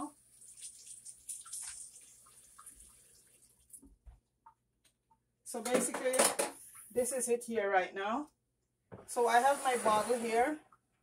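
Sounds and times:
water splashing in a sink: 0:00.0 - 0:04.0, 0:09.1 - 0:10.6.

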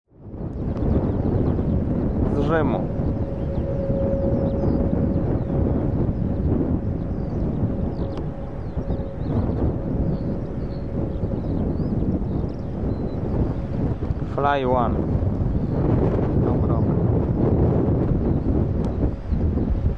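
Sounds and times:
jet engine rumble: 0:00.1 - 0:19.9
wind on microphone: 0:00.1 - 0:19.9.

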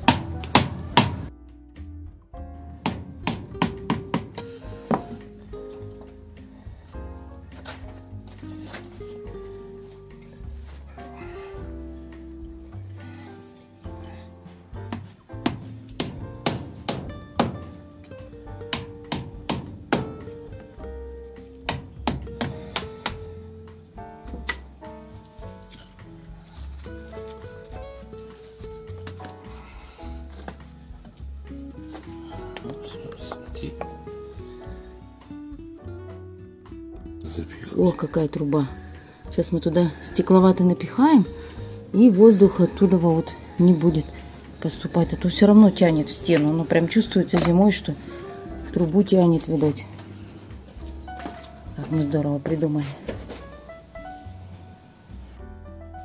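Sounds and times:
hammer knocking on chisel: 0:00.0 - 0:01.3, 0:02.8 - 0:05.2, 0:14.9 - 0:17.8, 0:18.7 - 0:20.4, 0:21.6 - 0:23.3
background music: 0:00.0 - 0:56.0.

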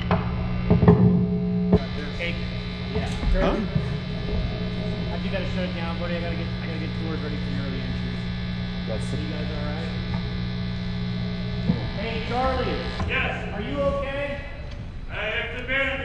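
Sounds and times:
electrical mains hum: 0:00.0 - 0:16.0
faint voices talking: 0:01.8 - 0:16.0.

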